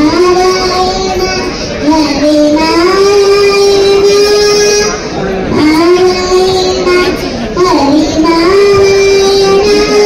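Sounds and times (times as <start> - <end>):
girl singing into microphone: 0.0 - 10.0.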